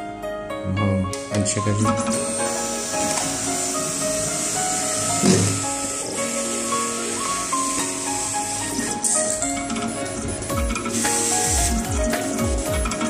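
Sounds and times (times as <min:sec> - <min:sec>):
label cutter motors whining: 0:01.8 - 0:13.0.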